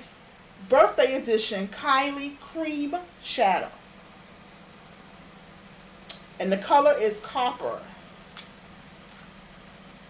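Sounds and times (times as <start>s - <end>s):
room hum and hiss: 0.0s - 10.0s.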